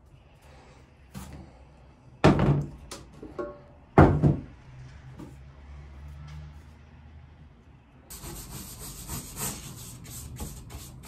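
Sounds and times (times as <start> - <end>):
paintbrush scrubbing on cardboard: 8.1 - 11.0.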